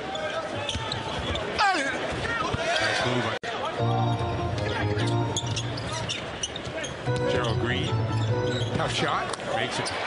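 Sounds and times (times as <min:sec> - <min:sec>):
sneaker squeaks on hardwood: 0:05.0 - 0:09.0.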